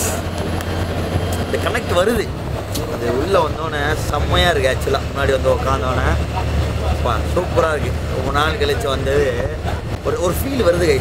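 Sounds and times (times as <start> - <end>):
low rumble of moving bus: 0.0 - 11.0.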